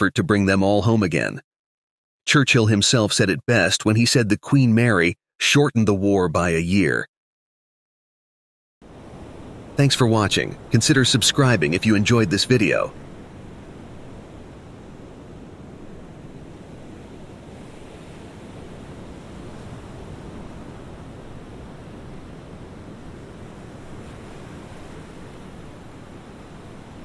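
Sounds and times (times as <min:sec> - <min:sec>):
waves washing: 0:08.8 - 0:27.0.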